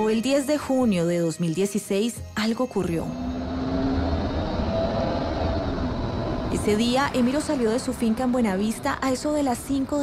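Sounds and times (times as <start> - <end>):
vehicle rumbling along road: 3.1 - 10.0.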